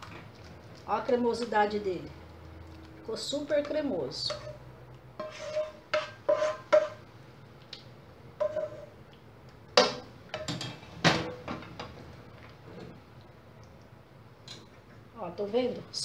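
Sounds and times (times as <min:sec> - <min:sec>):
spatula scraping and knocking pan: 0:03.6 - 0:04.6, 0:05.2 - 0:07.1, 0:08.4 - 0:09.0.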